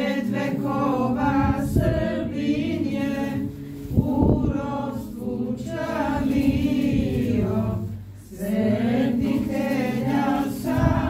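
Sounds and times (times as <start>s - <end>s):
group chanting together: 0.0s - 11.0s.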